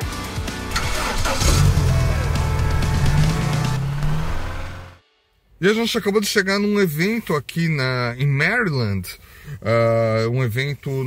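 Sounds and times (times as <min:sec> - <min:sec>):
intro music: 0:00.1 - 0:05.2
car engine revving: 0:00.7 - 0:05.0.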